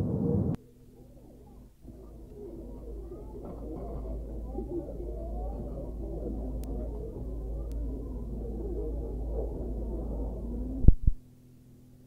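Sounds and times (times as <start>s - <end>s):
steady low hum: 0.0s - 12.0s
muffled chatter of voices: 0.5s - 10.9s.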